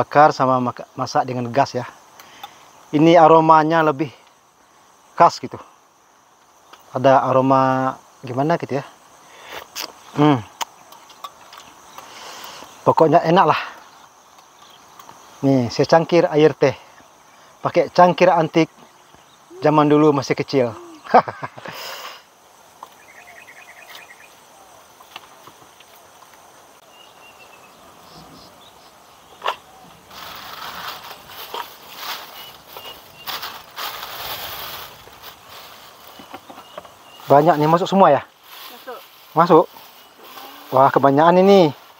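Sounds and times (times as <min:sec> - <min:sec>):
insect trill: 0:00.0 - 0:41.9
leafy greens rustling: 0:29.2 - 0:41.9.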